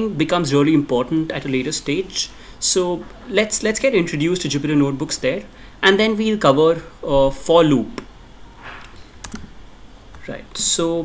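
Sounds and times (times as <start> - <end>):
computer keys clicking: 8.8 - 9.5.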